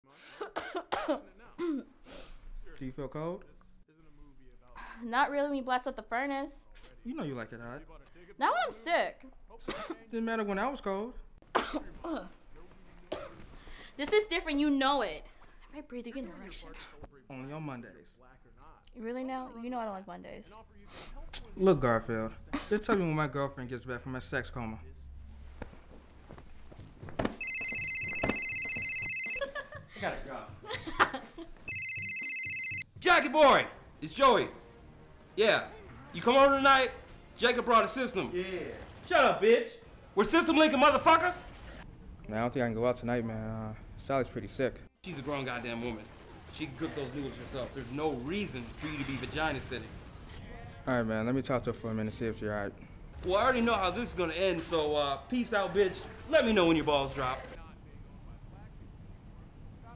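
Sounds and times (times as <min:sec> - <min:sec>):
woman coughing: 0:00.4 - 0:01.9, 0:09.6 - 0:10.0, 0:11.5 - 0:12.3, 0:13.1 - 0:13.4
phone ringing: 0:27.4 - 0:29.6, 0:31.6 - 0:33.0.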